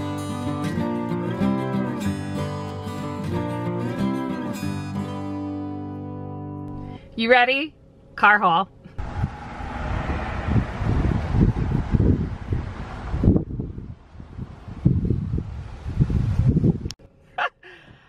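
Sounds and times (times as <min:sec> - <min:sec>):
wind buffeting microphone: 0:09.0 - 0:17.0.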